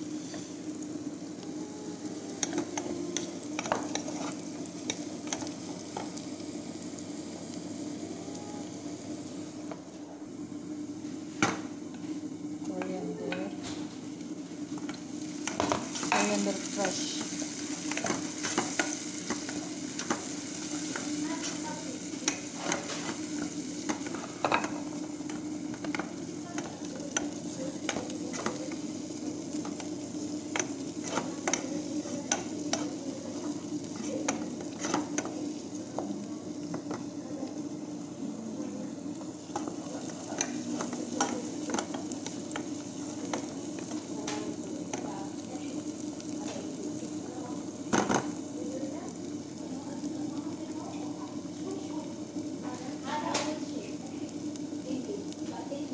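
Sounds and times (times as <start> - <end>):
onion sizzling in hot oil: 0.0 - 55.9.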